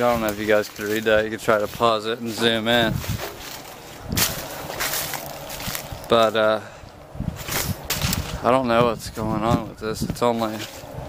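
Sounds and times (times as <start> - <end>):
footsteps crunching dry leaves: 0.0 - 8.6
leaves rustling: 0.0 - 11.0.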